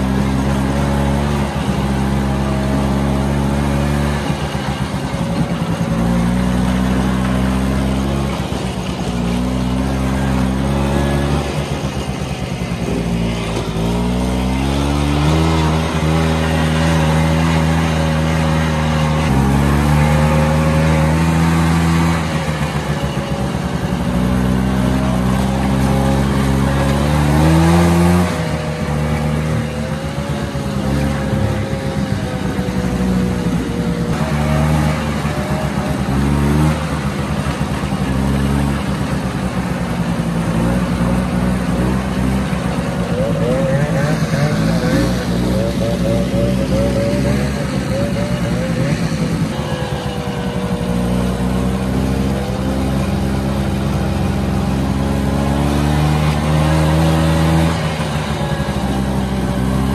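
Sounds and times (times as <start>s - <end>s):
snowmobile engine accelerating: 0.0s - 59.9s.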